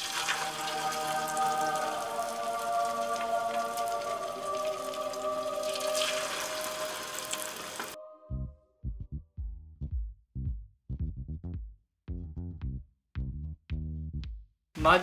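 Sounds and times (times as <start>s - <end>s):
battered meat sizzling in oil: 0.0s - 8.0s
soft music: 0.0s - 9.3s, 14.8s - 15.0s.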